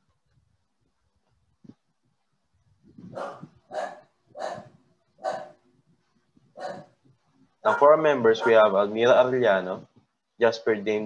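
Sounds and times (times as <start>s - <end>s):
dog barking: 3.1s - 5.6s, 6.6s - 7.0s, 7.6s - 8.8s.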